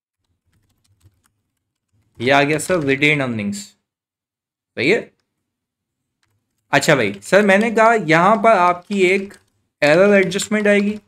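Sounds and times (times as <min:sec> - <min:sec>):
laptop keyboard typing: 0:00.1 - 0:03.2, 0:06.1 - 0:11.0.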